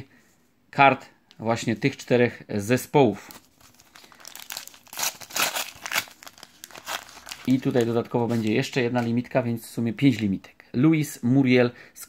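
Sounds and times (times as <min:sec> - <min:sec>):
foil packet crinkling and ripping: 0:03.2 - 0:09.2.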